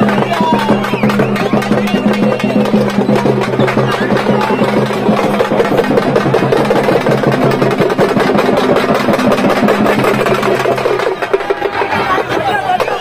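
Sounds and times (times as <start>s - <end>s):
procession drums beating fast: 0.0s - 13.0s.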